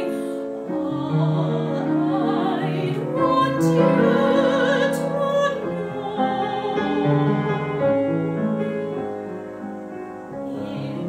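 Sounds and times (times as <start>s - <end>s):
slow soft piano chords: 0.0s - 11.0s.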